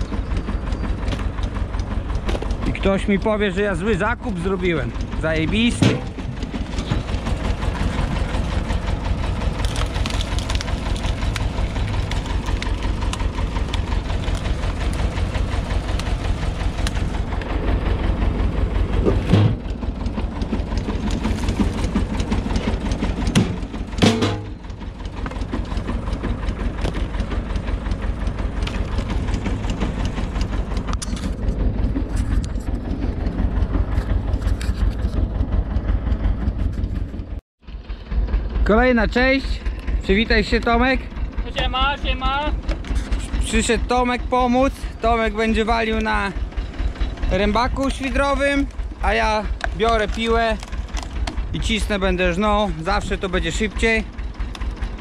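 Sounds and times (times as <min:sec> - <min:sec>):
log splitter pulsing: 0:00.0 - 0:55.0
tractor engine running: 0:00.0 - 0:55.0
wood splitting cracks: 0:05.8 - 0:17.5, 0:19.2 - 0:24.4, 0:48.6 - 0:51.6.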